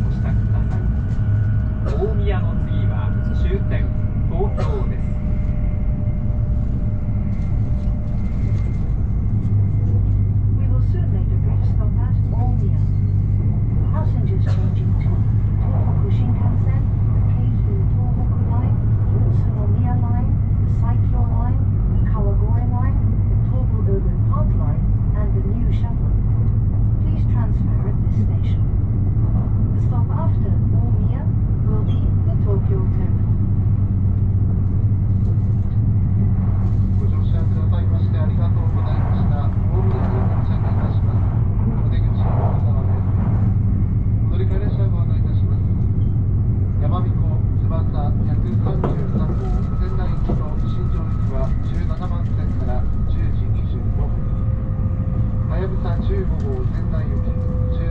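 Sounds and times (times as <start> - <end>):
low voices: 0.0 - 26.4, 36.2 - 57.9
train running rumble: 0.0 - 57.9.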